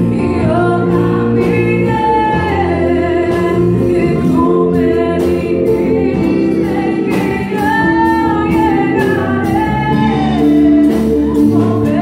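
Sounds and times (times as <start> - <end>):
gospel band playing: 0.0 - 12.0
woman singing into microphone: 0.0 - 12.0.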